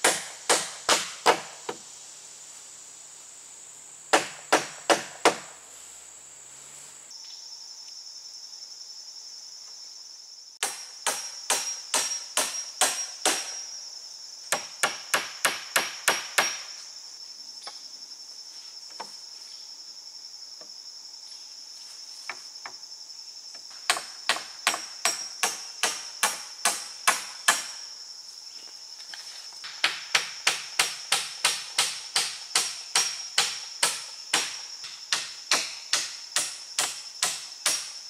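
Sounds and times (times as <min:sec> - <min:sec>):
hammer striking wooden pole: 0:00.0 - 0:01.8, 0:04.1 - 0:05.5, 0:10.6 - 0:13.6, 0:14.5 - 0:16.7, 0:23.9 - 0:27.8, 0:29.7 - 0:38.0
insects droning: 0:00.0 - 0:38.0.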